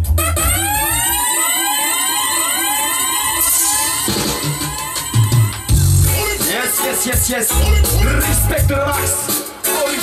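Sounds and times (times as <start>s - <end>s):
backing track bass: 0.0s - 10.0s
electronic siren whoops: 0.2s - 5.8s.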